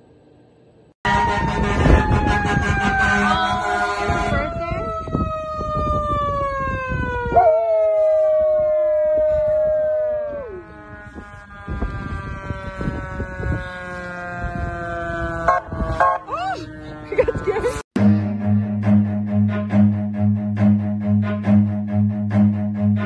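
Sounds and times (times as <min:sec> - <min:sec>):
siren-like wail sliding down: 0:01.0 - 0:17.8.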